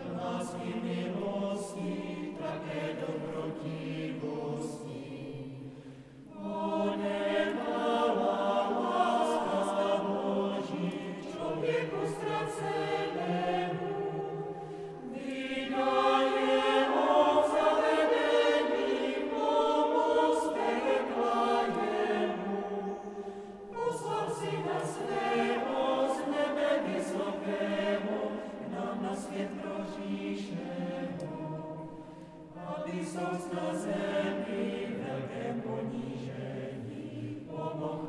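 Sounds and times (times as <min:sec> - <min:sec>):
mixed choir singing a cappella: 0:00.0 - 0:38.0.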